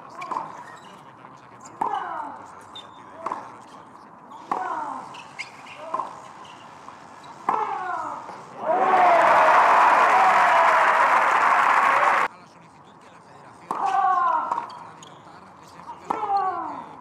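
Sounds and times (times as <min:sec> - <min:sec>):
racket striking tennis ball: 0:07.4 - 0:08.0
crowd applauding and cheering: 0:08.6 - 0:12.3.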